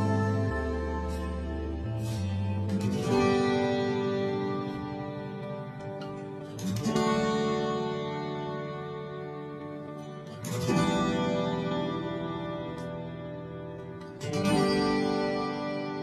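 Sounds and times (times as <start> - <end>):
strummed guitar chords: 0.0 - 16.0.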